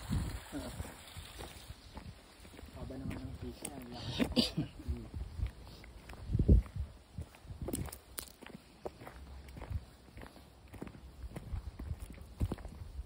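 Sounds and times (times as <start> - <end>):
footsteps crunching on gravel: 0.0 - 13.0.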